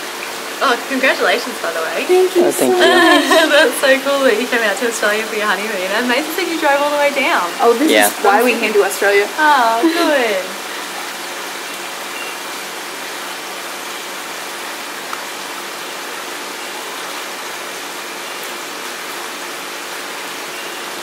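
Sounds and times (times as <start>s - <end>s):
running water rushing: 0.0s - 21.0s.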